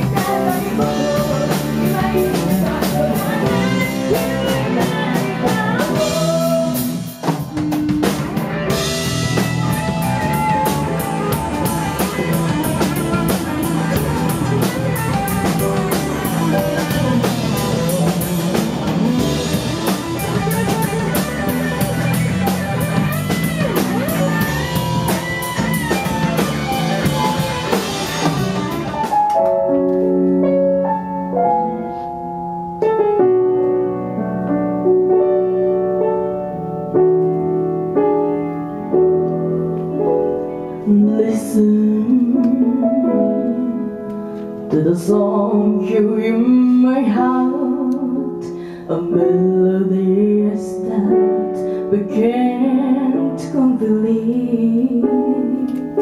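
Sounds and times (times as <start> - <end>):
electric guitars: 0.0 - 30.9
drum kit: 0.0 - 31.2
keyboard playing piano chords: 0.0 - 56.0
lead guitar bending notes: 7.5 - 30.5.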